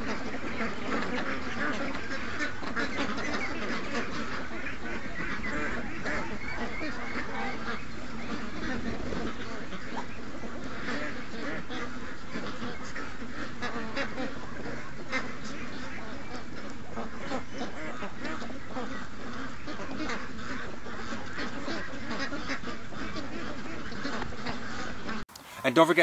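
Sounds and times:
ducks quacking: 0.0s - 26.0s
geese honking: 0.0s - 26.0s.

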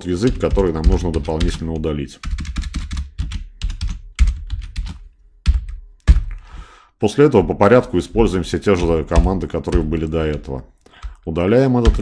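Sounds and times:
computer keyboard typing: 0.0s - 6.4s, 7.7s - 12.0s.

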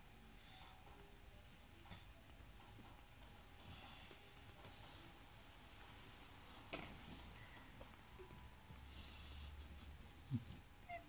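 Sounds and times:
puppy whimpering: 10.3s - 11.0s.

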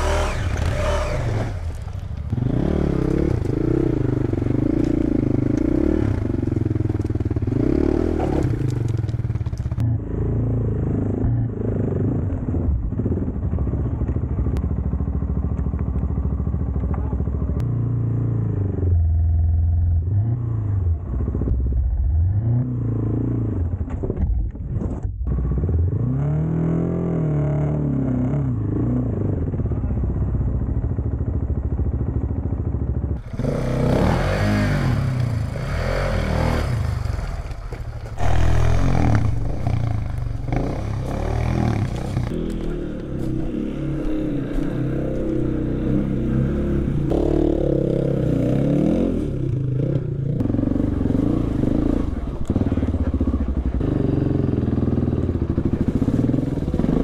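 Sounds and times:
motorcycle engines revving: 0.0s - 24.0s, 25.3s - 57.0s.

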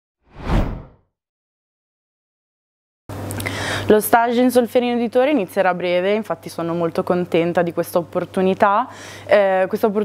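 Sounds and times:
deep whoosh: 0.3s - 1.0s.

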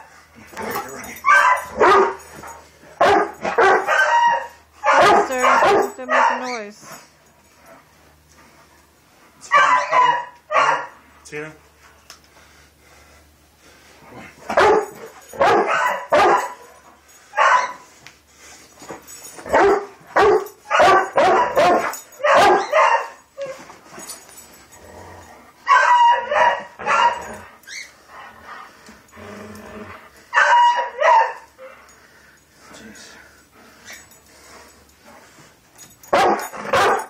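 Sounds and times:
dog barking: 1.2s - 2.2s, 3.0s - 6.6s, 9.4s - 11.0s, 14.5s - 16.6s, 17.4s - 17.8s, 19.5s - 23.2s, 25.7s - 27.4s, 30.4s - 31.5s, 36.1s - 37.0s.

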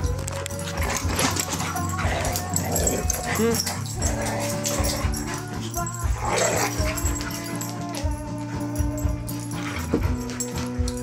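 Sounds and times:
background music with held notes: 0.0s - 11.0s
dogs barking and yipping: 0.0s - 11.0s
dogs scuffling: 0.0s - 11.0s.

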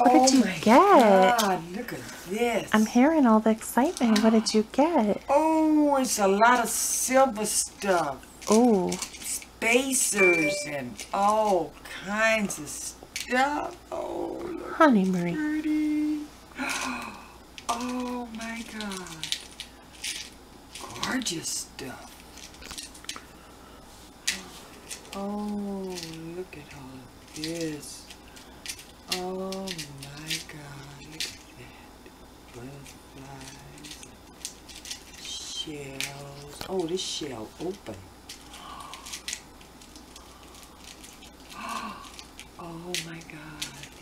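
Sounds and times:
low voice-like hum: 13.8s - 19.3s.

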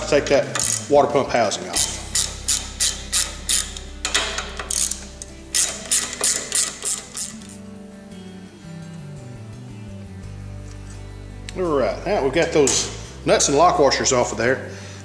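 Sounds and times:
background music: 0.0s - 15.0s
ratchet wrench clicking: 0.5s - 0.9s, 1.8s - 7.6s.

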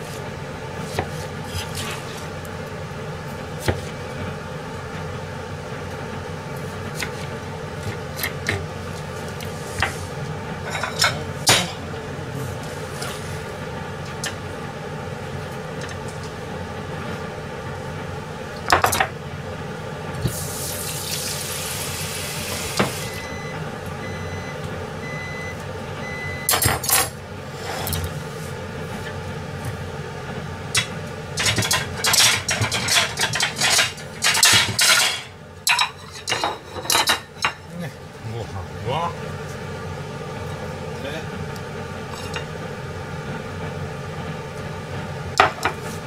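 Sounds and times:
steady background hum: 0.0s - 46.0s
plates clattering on steel counter: 10.7s - 11.8s, 30.8s - 37.6s.

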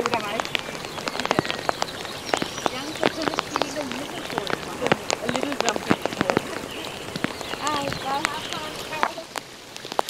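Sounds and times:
faint voices: 0.0s - 9.4s
heavy rain falling: 0.0s - 10.0s
raindrops hitting near microphone: 0.0s - 10.0s.

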